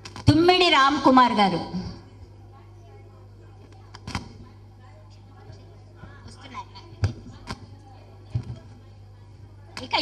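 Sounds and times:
steady low hum: 0:00.0 - 0:10.0
faint voices: 0:01.9 - 0:10.0.

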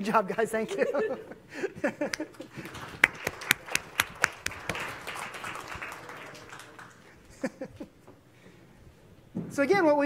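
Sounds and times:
sharp hand claps: 0:02.1 - 0:07.1
light applause: 0:02.1 - 0:07.6.

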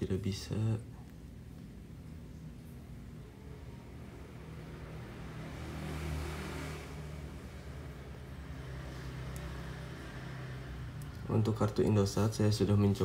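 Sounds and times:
vehicle engine humming: 0:01.0 - 0:12.3.

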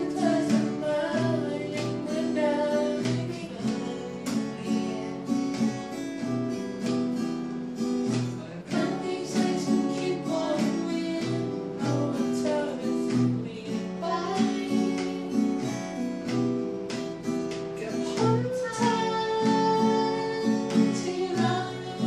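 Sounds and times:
person singing: 0:00.0 - 0:05.8, 0:08.3 - 0:16.4, 0:17.7 - 0:22.0
acoustic guitars strummed: 0:00.0 - 0:22.0.

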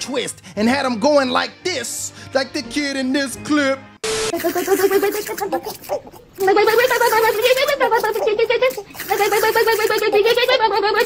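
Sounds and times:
boy wavering ahh: 0:04.4 - 0:11.0.

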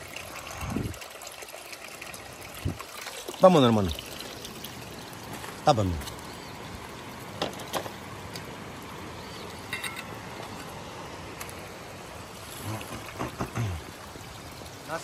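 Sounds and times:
mountain stream rushing: 0:00.0 - 0:15.0
man murmuring: 0:12.6 - 0:13.9.

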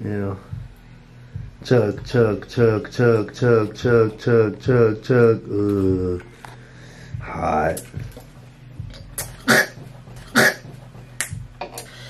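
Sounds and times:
muffled vocal sound: 0:01.4 - 0:06.4
person coughing: 0:09.4 - 0:10.7.

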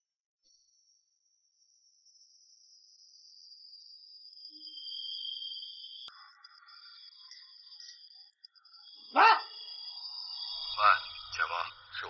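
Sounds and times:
faint steady high tone: 0:00.5 - 0:12.0.

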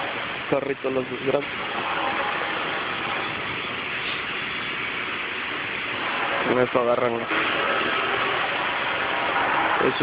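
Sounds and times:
machinery rushing hum: 0:00.0 - 0:10.0.

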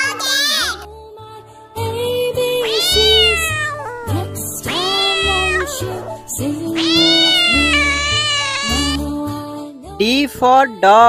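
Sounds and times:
cat meowing: 0:00.0 - 0:00.9, 0:02.6 - 0:09.0.

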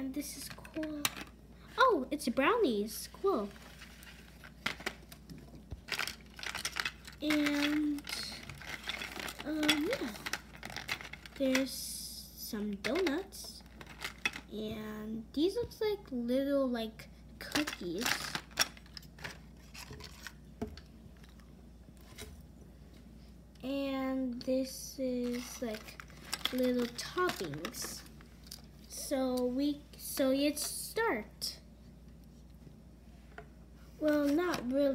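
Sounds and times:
plastic clicks and rustles: 0:04.0 - 0:11.7, 0:12.8 - 0:14.5, 0:17.5 - 0:22.4, 0:25.2 - 0:28.7.

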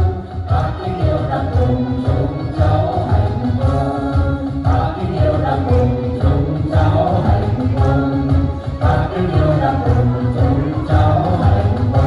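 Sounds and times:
chorus singing: 0:00.0 - 0:12.0
instrumental accompaniment with beat: 0:00.0 - 0:12.0.

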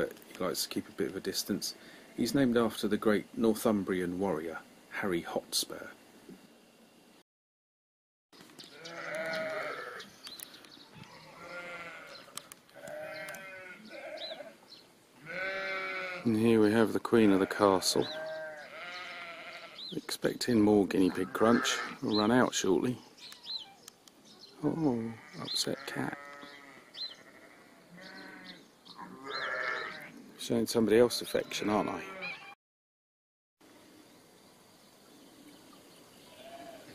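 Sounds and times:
sheep bleating: 0:08.7 - 0:10.1, 0:11.0 - 0:14.6, 0:15.2 - 0:16.3, 0:17.2 - 0:19.9, 0:21.1 - 0:22.1, 0:24.9 - 0:30.1, 0:31.4 - 0:32.5, 0:36.3 - 0:36.9.

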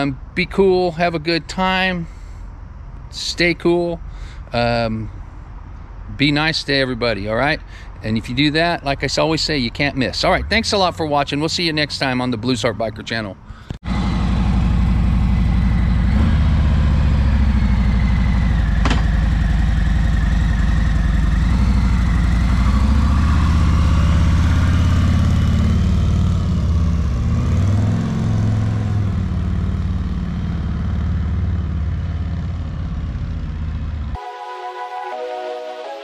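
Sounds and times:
motorcycle engine pulling away: 0:13.9 - 0:34.2
electronic music: 0:34.2 - 0:36.0.

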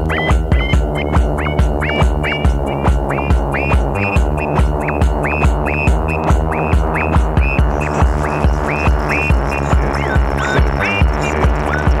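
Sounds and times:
droning bass tones: 0:00.0 - 0:12.0
steady kick drum: 0:00.0 - 0:12.0.

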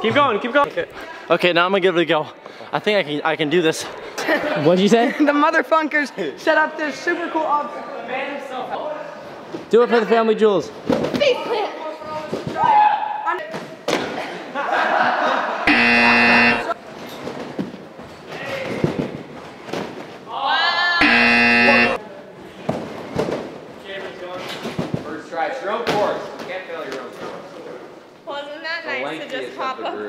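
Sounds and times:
loose voices: 0:15.6 - 0:16.8, 0:21.0 - 0:22.6
loud buzzer tone: 0:15.7 - 0:16.8, 0:21.0 - 0:22.0.

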